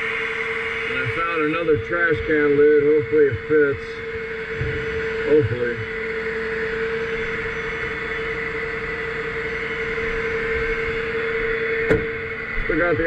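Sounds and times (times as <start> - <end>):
high whine: 0.0 - 13.0
truck engine idling: 0.0 - 13.0.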